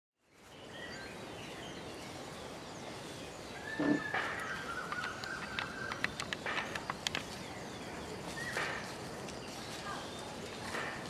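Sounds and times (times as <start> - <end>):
outdoor background noise: 0.2 - 11.0.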